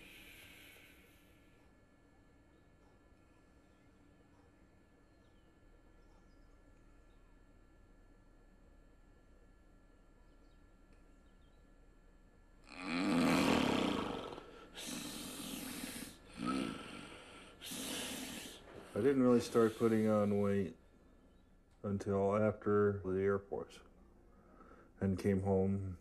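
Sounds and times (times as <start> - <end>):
man snoring: 12.7 - 20.3.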